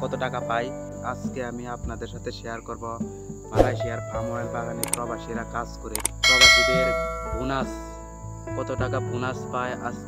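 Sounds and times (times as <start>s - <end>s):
man talking: 0.0s - 7.9s, 8.6s - 10.0s
insects droning: 0.0s - 10.0s
bell-like chime: 6.2s - 7.6s.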